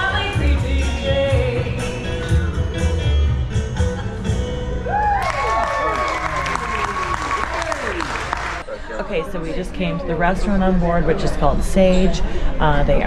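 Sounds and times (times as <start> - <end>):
woman singing live song: 0.0 - 2.4
bass-heavy backing music: 0.0 - 8.6
audience clapping and whooping: 4.8 - 8.7.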